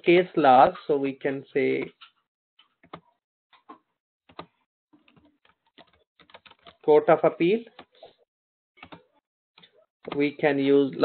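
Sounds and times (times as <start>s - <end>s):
faint computer keyboard typing: 4.3s - 6.8s, 8.8s - 10.2s.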